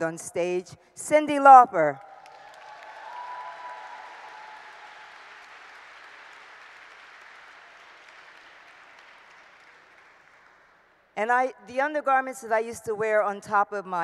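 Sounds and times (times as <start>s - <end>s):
audience applauding: 2.1s - 10.9s.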